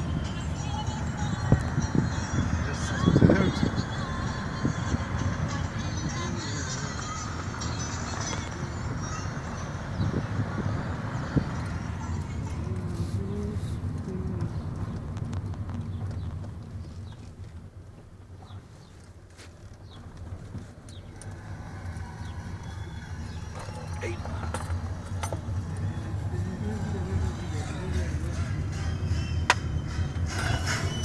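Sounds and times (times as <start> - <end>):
car engine and road rumble: 0.0 - 31.0
wind through open window: 8.4 - 28.0.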